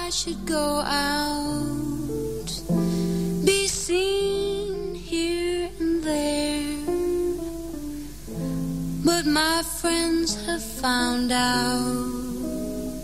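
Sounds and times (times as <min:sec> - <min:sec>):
woman singing: 0:00.0 - 0:07.6, 0:08.9 - 0:13.0
guitar accompaniment: 0:00.0 - 0:13.0.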